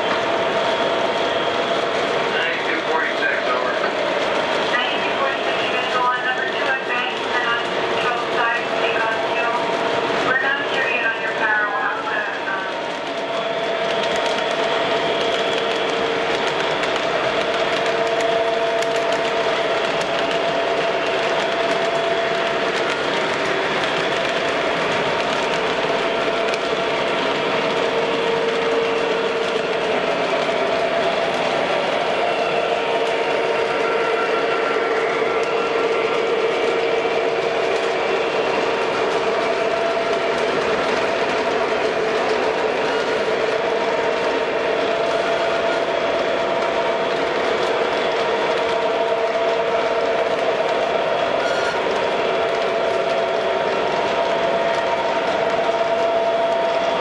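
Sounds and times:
model train running: 0.0 - 57.0.

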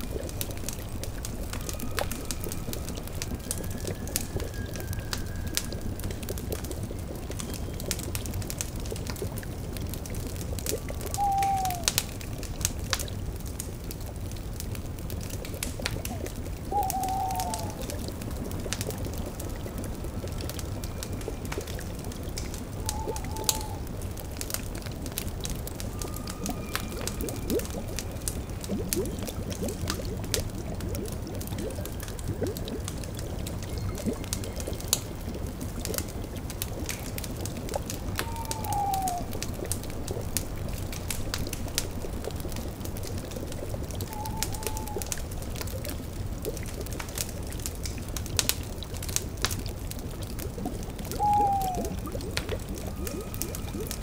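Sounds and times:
bubbling cauldron: 0.0 - 54.0
crackling fire: 0.0 - 54.0
owl hooting: 11.1 - 11.9, 16.7 - 17.9, 22.8 - 23.9, 38.2 - 39.4, 44.1 - 45.1, 51.1 - 52.0.

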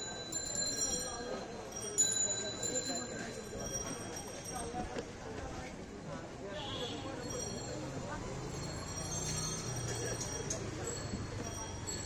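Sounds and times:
bicycle bell ringing: 0.0 - 4.7, 7.2 - 12.0
many background voices: 0.0 - 12.0.

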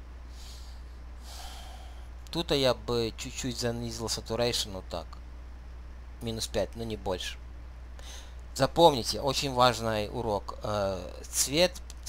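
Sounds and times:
low steady hum: 0.0 - 12.0
man breathing: 0.3 - 2.2, 8.0 - 8.4.

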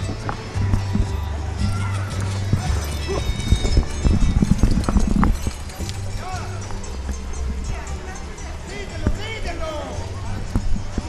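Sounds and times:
horses galloping on sand: 0.0 - 11.0.

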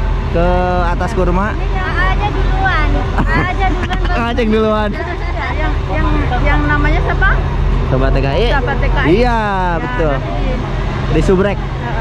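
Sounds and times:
diesel bus engine idling: 0.0 - 12.0
people talking: 0.4 - 12.0.

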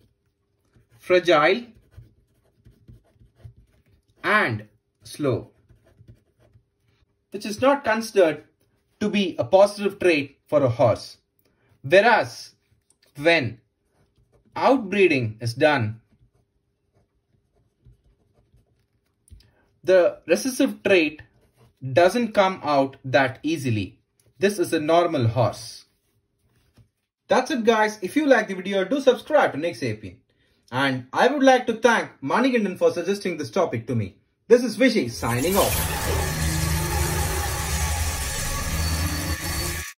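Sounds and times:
felt-tip pen writing on paper: 1.7 - 4.2, 5.5 - 6.9, 16.1 - 19.1.

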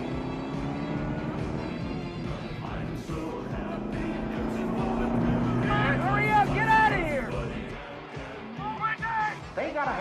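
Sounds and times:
vehicle engine drone: 0.0 - 8.0
film score music: 0.0 - 10.0.

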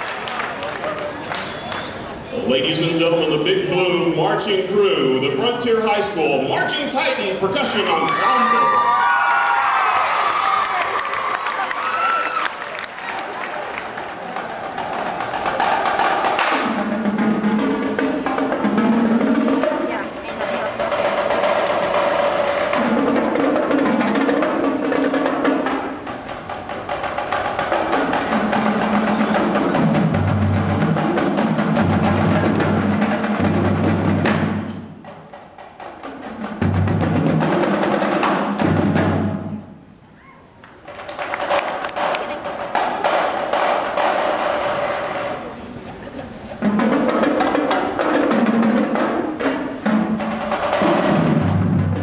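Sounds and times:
snare drums: 1.4 - 8.9, 13.2 - 39.8, 40.8 - 45.6, 46.5 - 52.0
tenor drums: 2.3 - 40.0, 40.7 - 52.0
bass drums: 49.8 - 52.0.

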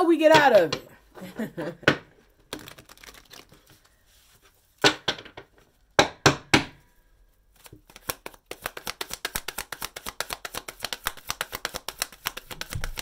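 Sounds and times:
cards being shuffled: 2.4 - 4.6, 7.5 - 13.0.

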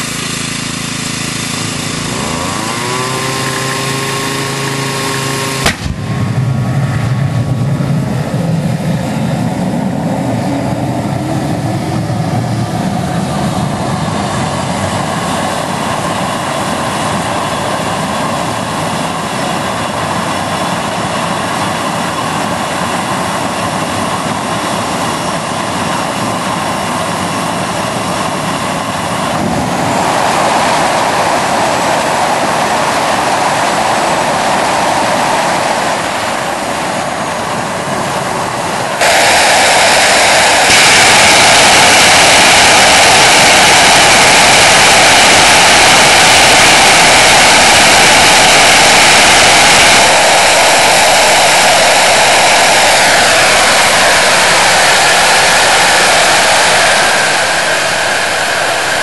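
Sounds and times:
jet engine spooling up and roaring: 0.0 - 59.0
sharp pop of ignition: 4.6 - 6.4, 39.0 - 51.0.

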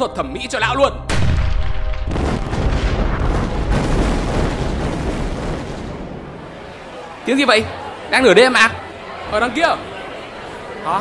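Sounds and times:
cannon fire and explosions: 1.1 - 6.6.

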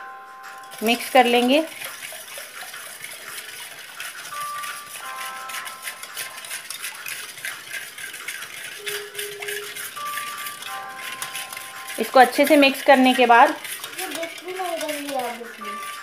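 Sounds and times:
quiet background music: 0.0 - 16.0
whisk clicking against steel bowl: 0.5 - 16.0.

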